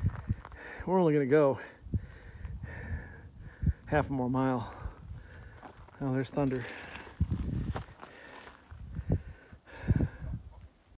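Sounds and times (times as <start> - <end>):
footsteps on dirt trail: 0.0 - 1.1, 4.5 - 9.4.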